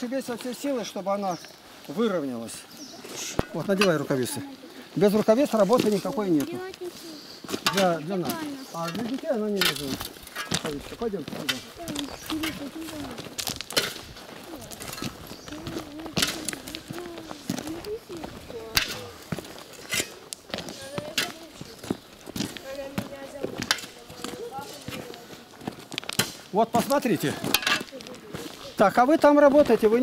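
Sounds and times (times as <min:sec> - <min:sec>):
footsteps on gravel: 0:00.1 - 0:30.0
distant voices talking: 0:14.2 - 0:25.8.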